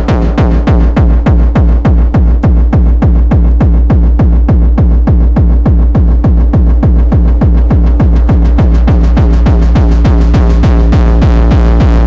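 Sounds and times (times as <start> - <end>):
distorted kick drum: 0.0 - 12.0.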